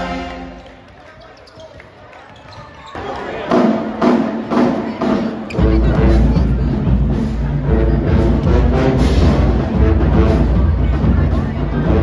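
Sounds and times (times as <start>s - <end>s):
brass band chord: 0.0s - 0.6s, 7.6s - 11.1s
crowd chatter echoing: 0.0s - 12.0s
drumline hits: 3.2s - 12.0s.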